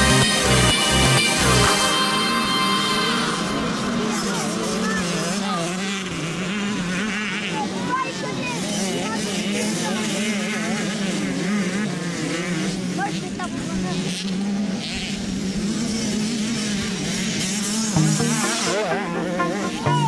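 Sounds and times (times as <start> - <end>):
steady low drone: 0.0 - 5.2, 17.8 - 20.0
motocross engines revving: 0.0 - 20.0.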